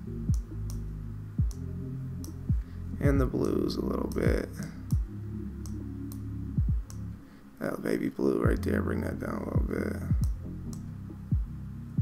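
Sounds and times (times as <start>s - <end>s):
background music with deep bass: 0.0s - 12.0s.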